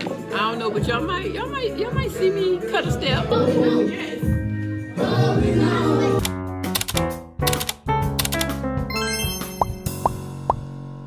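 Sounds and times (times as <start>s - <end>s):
background music: 0.0s - 11.0s
rising pop sound effects: 8.9s - 10.7s.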